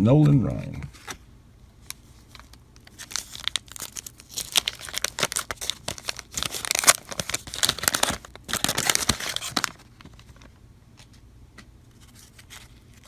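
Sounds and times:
wax paper wrapper tearing: 0:02.3 - 0:09.8.

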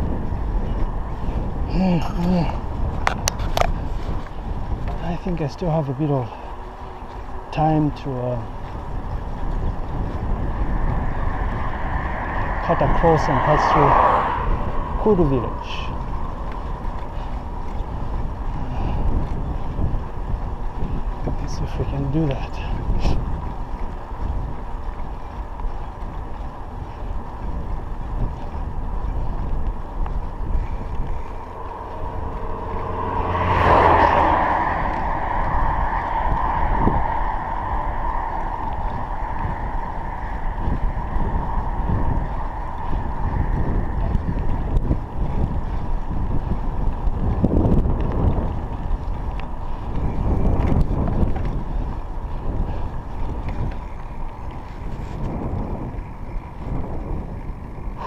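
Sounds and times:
wind buffeting microphone: 0:00.0 - 0:58.0
steady whine: 0:29.6 - 0:45.1.

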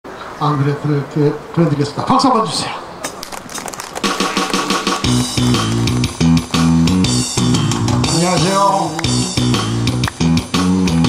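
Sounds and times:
band backing track over pa: 0:04.0 - 0:11.0.

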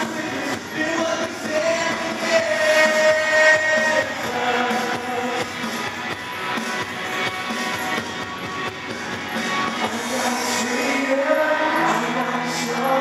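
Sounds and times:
praise band playing: 0:00.0 - 0:13.0.

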